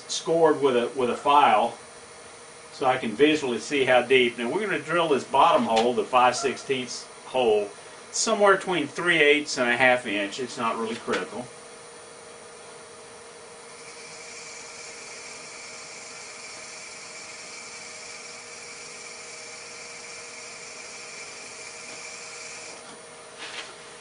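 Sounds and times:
drill bit cutting wood hiss and whine: 13.7s - 22.8s
wood lathe humming: 13.7s - 22.9s.

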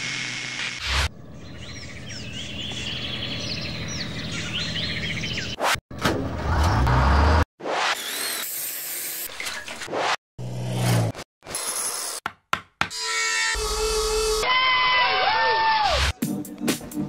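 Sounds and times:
small birds chirping: 1.1s - 5.6s.

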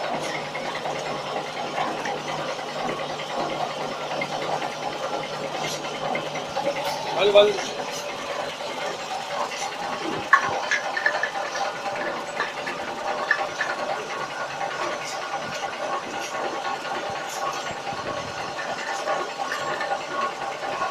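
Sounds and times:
bottling machine hum: 0.0s - 20.9s.

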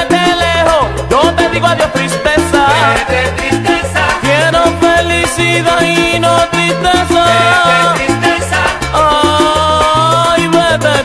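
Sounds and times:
salsa music: 0.0s - 11.0s.

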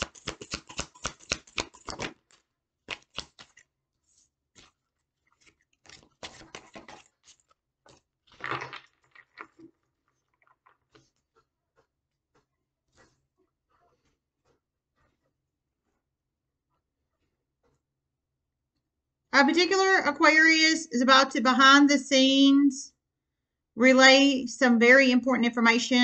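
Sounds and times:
cards being shuffled: 0.0s - 3.7s, 5.4s - 8.9s.

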